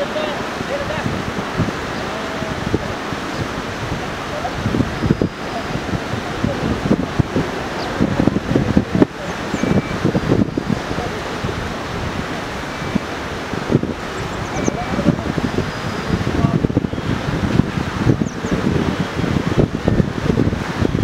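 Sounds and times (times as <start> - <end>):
people talking: 0.0 - 1.2, 1.9 - 21.0
river rushing: 0.0 - 21.0
wind on microphone: 0.0 - 21.0.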